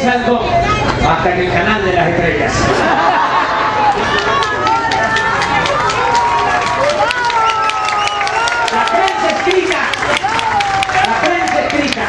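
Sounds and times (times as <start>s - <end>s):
audience calling out: 3.2s - 11.6s
audience clapping: 3.8s - 12.0s.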